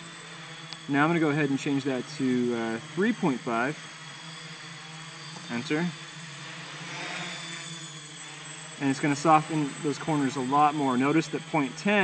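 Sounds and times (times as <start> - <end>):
quadcopter motors humming: 0.0 - 12.0.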